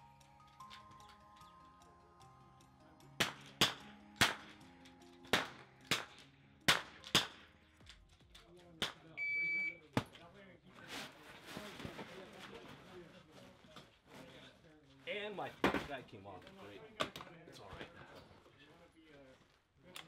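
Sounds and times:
background music: 0.0s - 9.6s
rifle shots: 5.3s - 7.5s
shot timer electronic beep: 9.2s - 9.8s.

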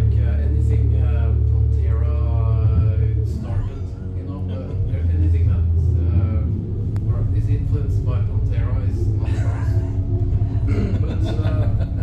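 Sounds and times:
low rumble with hum: 0.0s - 12.0s.

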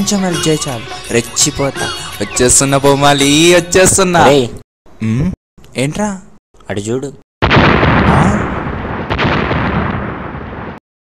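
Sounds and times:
explosion rumble: 7.4s - 10.8s
sharp crack: 7.4s - 10.8s.

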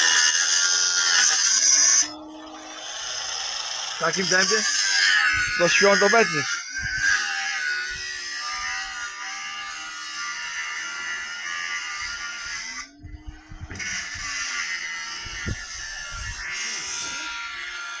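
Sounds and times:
angle grinder cutting metal: 0.0s - 18.0s.

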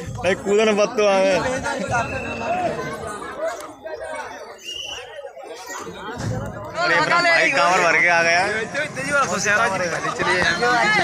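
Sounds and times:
men chattering: 0.0s - 11.0s.

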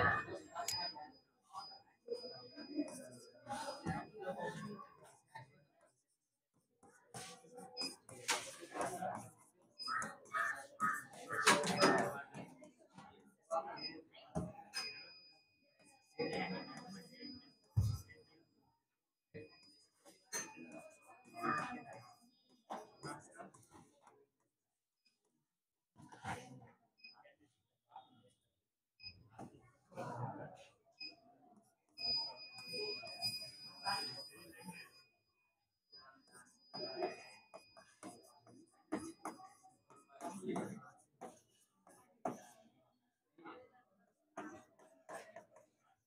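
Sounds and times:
indistinct talking: 7.1s - 12.4s.

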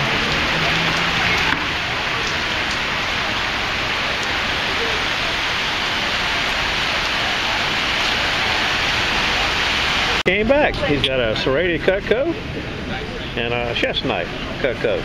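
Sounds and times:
heavy rain on wet pavement: 0.0s - 15.0s.

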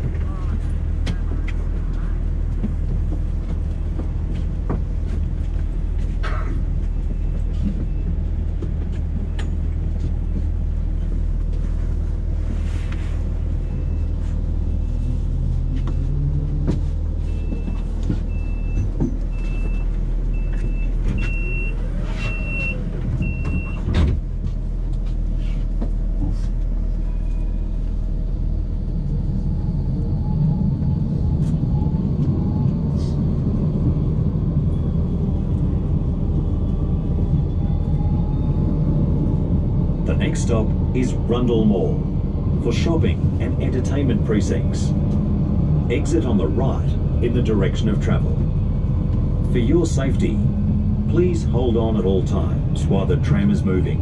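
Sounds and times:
tram rumble and motor whine: 0.0s - 54.0s.

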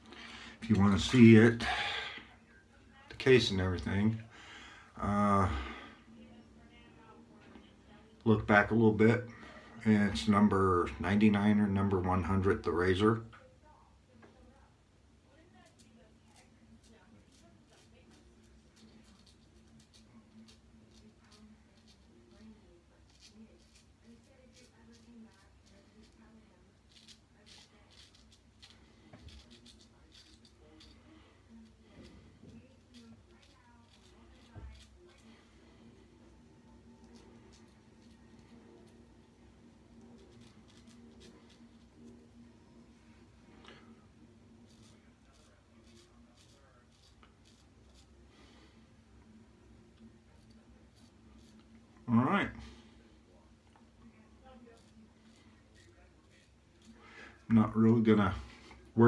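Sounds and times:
razor scraping stubble: 0.0s - 2.4s, 15.6s - 42.5s, 43.2s - 53.0s, 53.6s - 59.0s.

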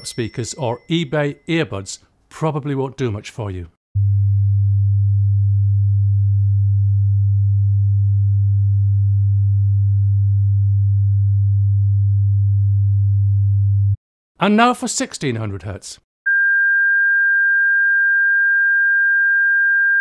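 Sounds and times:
low sine wave test tone: 4.0s - 14.0s.

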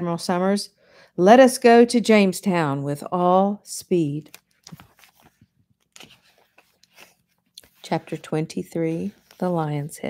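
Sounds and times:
soft clicks of pages turning: 4.2s - 8.2s
paper rustling: 4.3s - 8.2s, 8.9s - 9.9s.

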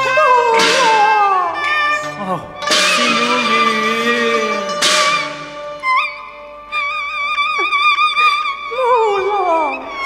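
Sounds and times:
bowed strings with vibrato: 0.0s - 10.0s.

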